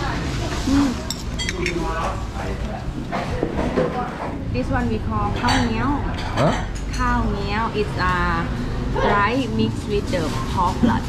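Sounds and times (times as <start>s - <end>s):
utensils clinking on a bowl: 1.0s - 2.2s.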